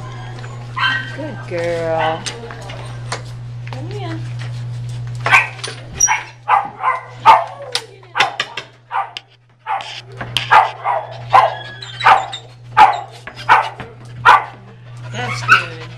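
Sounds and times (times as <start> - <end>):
small dog yapping: 10.5 - 13.7.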